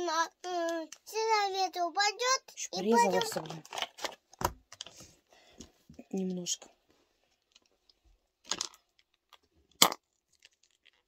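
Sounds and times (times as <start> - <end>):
packaging clicks and rustles: 3.0 - 5.1.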